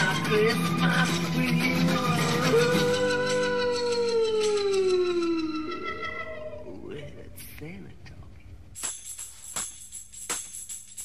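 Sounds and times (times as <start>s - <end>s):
wavering vocal pitch glides: 0.0s - 7.2s.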